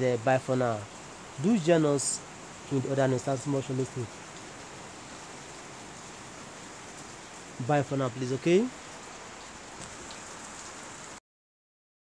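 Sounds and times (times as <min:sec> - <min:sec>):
steady background hiss: 0:00.0 - 0:11.2.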